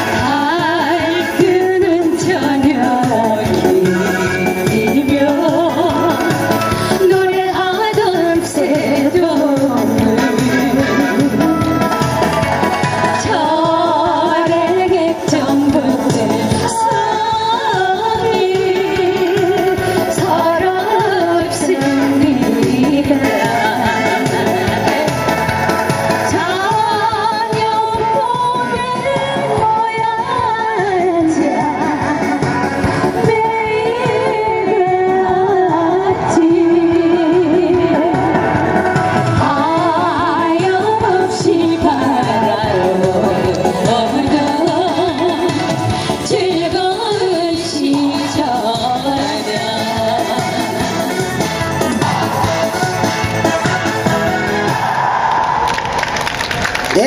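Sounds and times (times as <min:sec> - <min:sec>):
group singing over loudspeakers: 0:00.0 - 0:55.7
instrumental accompaniment with beat: 0:00.0 - 0:57.0
people clapping: 0:55.3 - 0:57.0.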